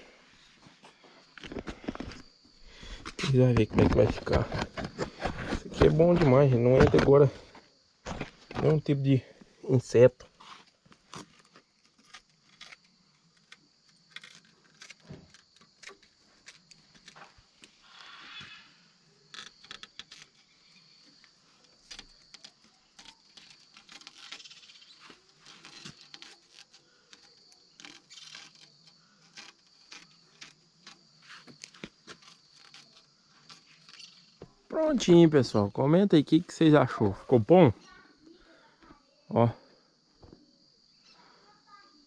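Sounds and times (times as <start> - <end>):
mesh rustling: 10.3 - 35.2.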